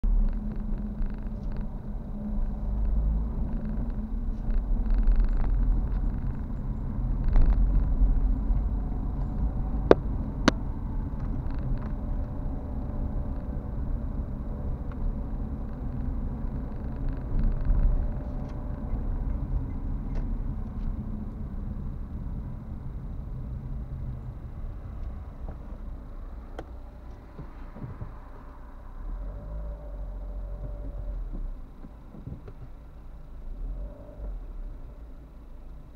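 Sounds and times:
car engine and road rumble: 0.0s - 35.9s.

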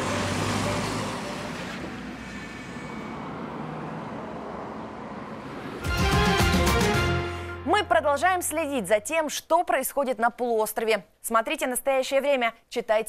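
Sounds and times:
cars and trolleybus moving: 0.0s - 7.5s.

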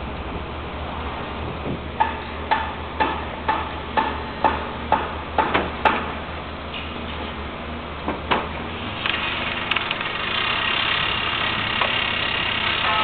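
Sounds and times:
low hum of machinery: 0.0s - 13.0s
hammer blows ringing on metal: 2.0s - 6.1s.

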